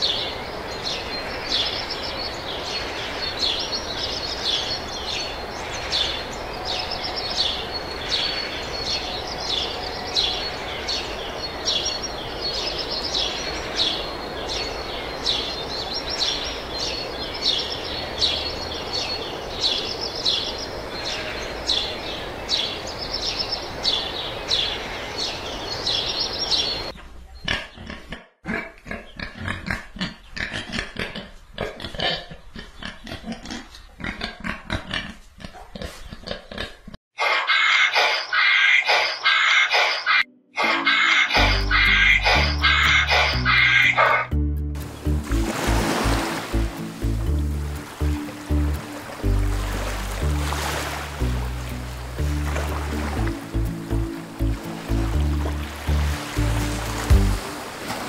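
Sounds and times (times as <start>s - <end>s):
hummingbirds chirping: 0.0s - 26.9s, 41.1s - 57.4s
pig grunting: 27.5s - 37.0s.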